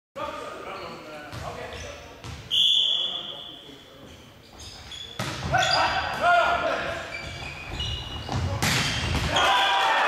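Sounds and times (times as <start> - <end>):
referee's whistle blast: 2.5 - 3.5
ball bouncing on court floor: 4.6 - 6.3, 7.1 - 9.5.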